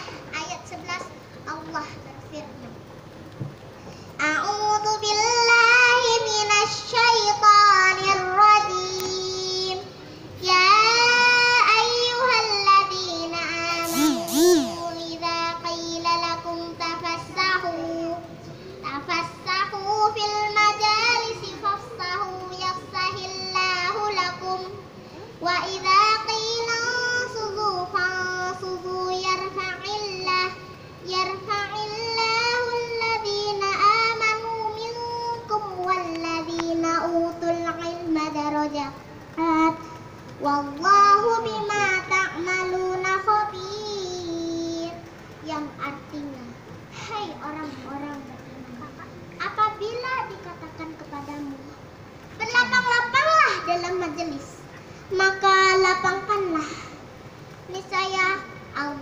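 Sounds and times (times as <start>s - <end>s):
girl singing into a microphone: 4.2s - 48.3s, 52.4s - 57.0s
girl breathing: 13.9s - 14.9s.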